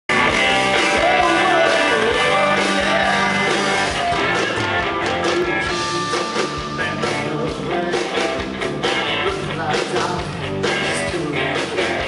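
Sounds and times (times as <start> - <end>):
country-rock band playing: 0.1 - 12.0
man singing: 0.8 - 4.0, 5.2 - 12.0.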